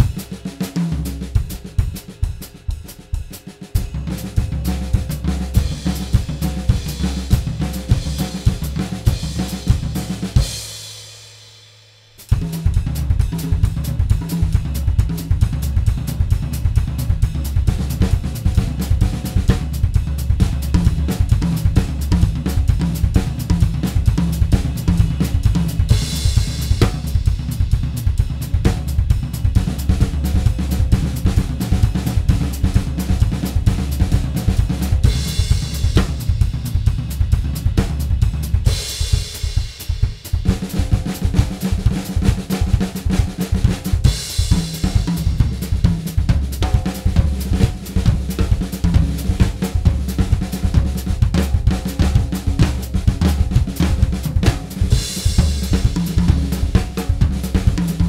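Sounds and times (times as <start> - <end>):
drum kit solo: 0.0 - 58.0.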